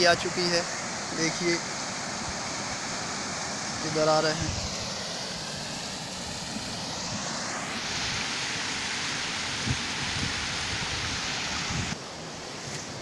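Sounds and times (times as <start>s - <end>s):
water rushing through culvert: 0.0s - 13.0s.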